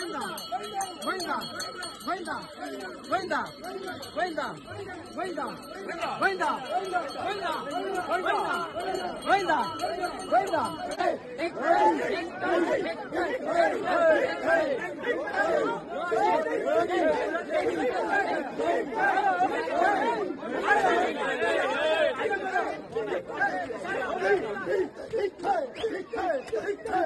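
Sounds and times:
crowd talking and calling out: 0:00.0 - 0:27.0.

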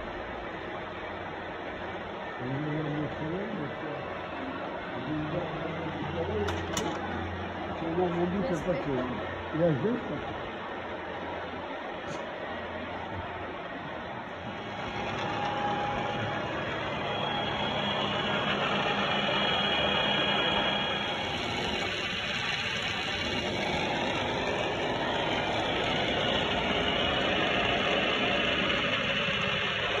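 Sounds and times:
faint whining gear tones: 0:00.0 - 0:30.0
milling machine drone: 0:00.0 - 0:30.0.

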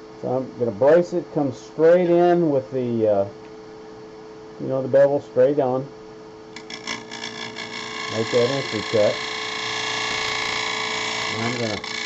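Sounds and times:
gouge cutting wood: 0:06.6 - 0:12.0
lathe running: 0:06.6 - 0:12.0.

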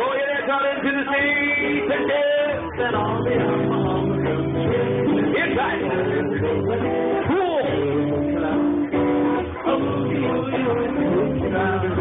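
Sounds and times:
strummed guitar music: 0:00.0 - 0:12.0.

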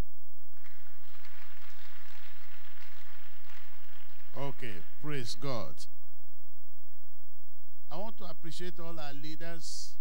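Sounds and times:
congregation applauding: 0:00.5 - 0:05.4.

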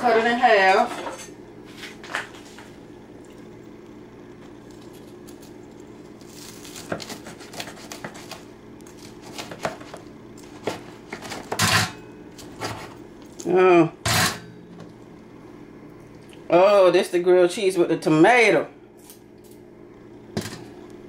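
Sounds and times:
knife cutting crispy sandwich: 0:05.1 - 0:09.8.

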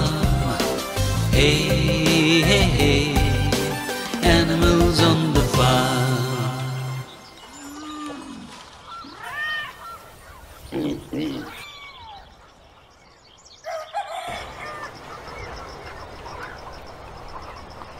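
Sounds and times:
animal cries: 0:10.7 - 0:12.3.

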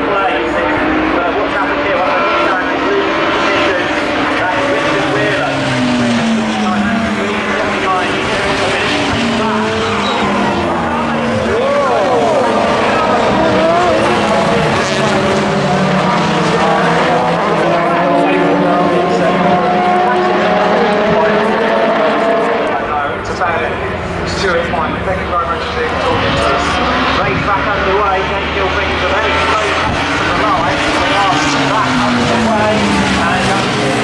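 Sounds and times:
race cars passing: 0:00.0 - 0:34.0.

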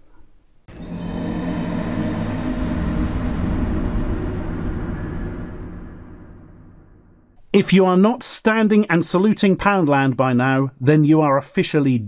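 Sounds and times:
deep steady drone: 0:00.7 - 0:07.4.

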